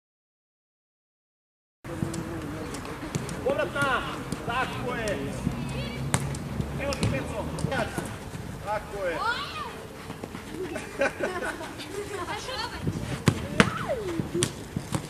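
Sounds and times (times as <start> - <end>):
ball being kicked thuds: 3.0 - 5.2, 6.1 - 8.1, 12.8 - 15.0
young players shouting: 3.4 - 6.2, 8.9 - 9.9, 13.4 - 14.2.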